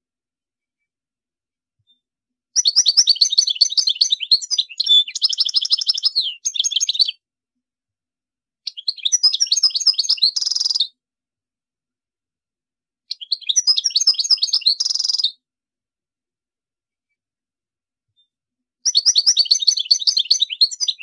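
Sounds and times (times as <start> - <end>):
bird twittering song: 2.6 - 7.2, 8.6 - 11.0, 13.1 - 15.4, 18.2 - 21.0.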